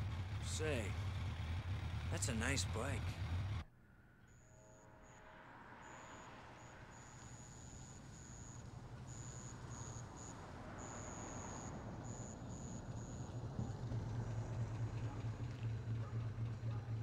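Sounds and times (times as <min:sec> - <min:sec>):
car engine running low: 0:00.0 - 0:03.6, 0:07.2 - 0:17.0.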